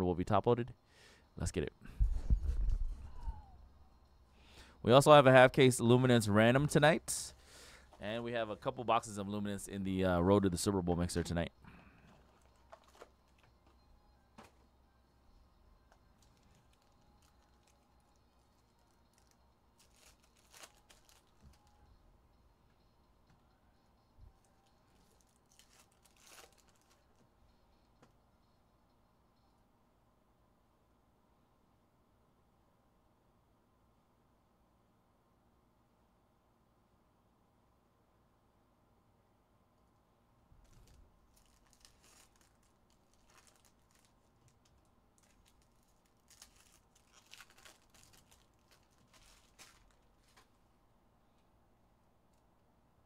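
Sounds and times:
pack wrapper crackling and tearing: 12.2s - 13.5s, 16.2s - 21.8s, 25.0s - 27.2s, 40.6s - 50.5s.

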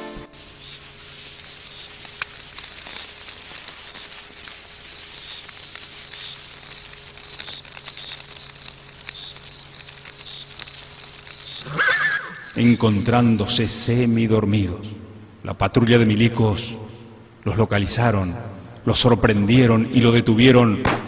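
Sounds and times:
insects chirping: 0.0s - 15.5s
low steady hum: 0.0s - 21.0s
faint clicks: 1.4s - 11.8s.

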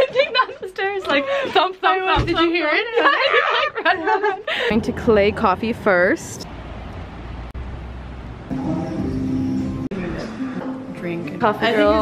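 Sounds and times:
background music with chords: 8.5s - 12.0s.

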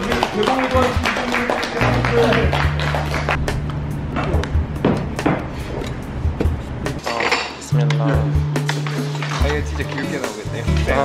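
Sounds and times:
background music: 0.0s - 11.0s
cutlery clinking on plates: 7.0s - 7.6s.

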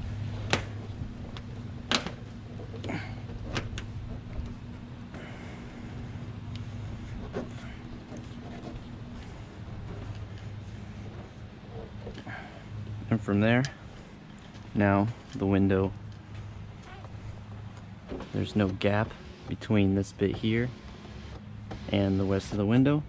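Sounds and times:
steady low hum: 0.0s - 23.0s.

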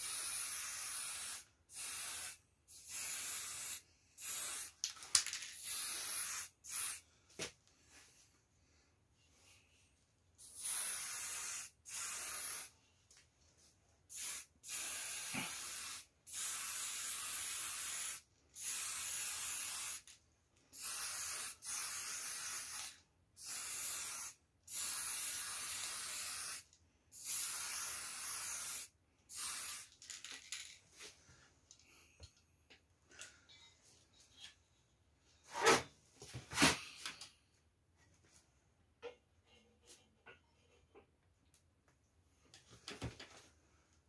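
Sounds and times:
spray can hissing: 0.0s - 7.0s, 10.5s - 12.7s, 14.1s - 20.1s, 20.8s - 26.6s, 27.2s - 30.7s.

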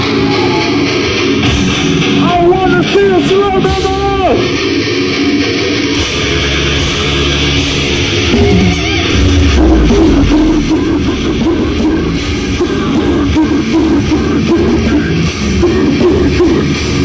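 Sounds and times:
distorted electric guitars: 0.0s - 17.0s
drums: 0.0s - 17.0s.

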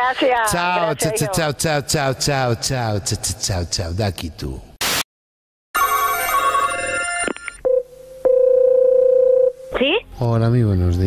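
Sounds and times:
telephone ringing tone: 5.8s - 9.6s.

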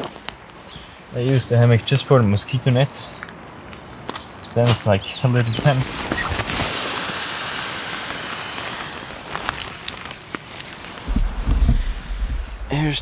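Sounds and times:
steady hiss: 5.6s - 13.0s
fabric rustling: 9.2s - 12.7s
low rumble on microphone: 11.1s - 13.0s.

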